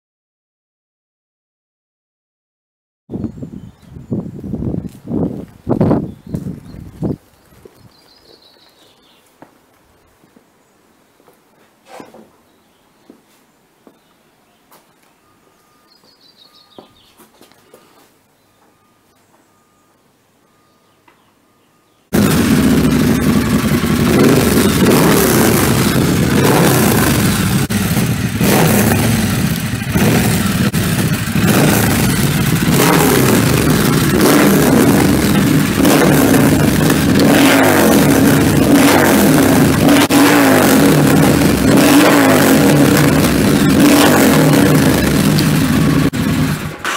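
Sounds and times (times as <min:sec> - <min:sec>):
motorcycle engine idling and revving: 0:22.1 - 0:46.9.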